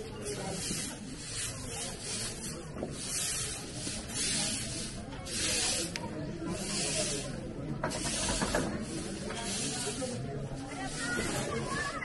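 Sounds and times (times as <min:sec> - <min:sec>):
broom sweeping pavement: 0:00.0 - 0:12.0.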